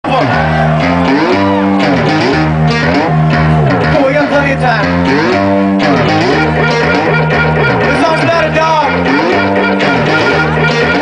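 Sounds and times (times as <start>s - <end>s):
low bass: 0.0s - 11.0s
sliding synthesizer tones: 4.8s - 11.0s.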